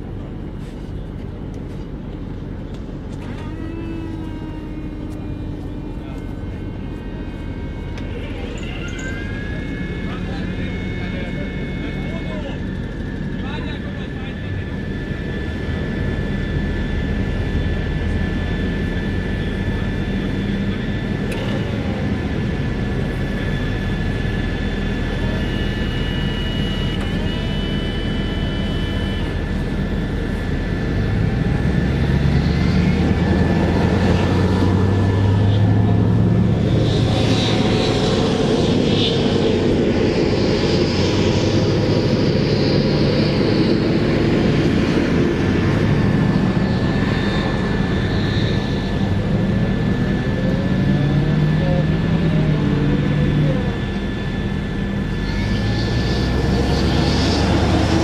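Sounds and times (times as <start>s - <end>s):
diesel engines running: 0.0s - 58.0s
steady high whine: 0.0s - 58.0s.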